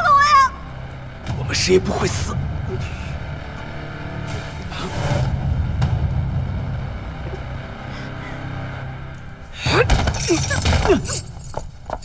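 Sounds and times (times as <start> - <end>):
dark suspense music drone: 0.0 - 11.6.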